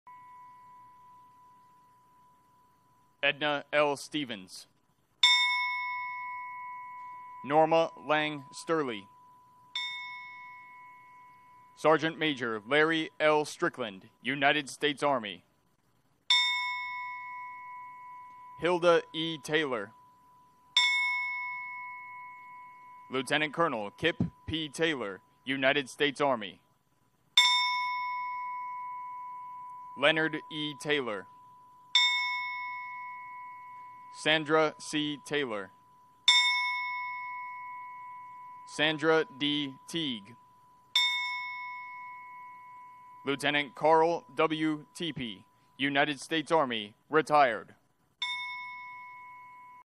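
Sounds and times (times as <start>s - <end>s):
bell ringing: 0.0s - 3.5s, 5.2s - 12.5s, 16.3s - 25.7s, 27.4s - 45.8s, 48.2s - 49.9s.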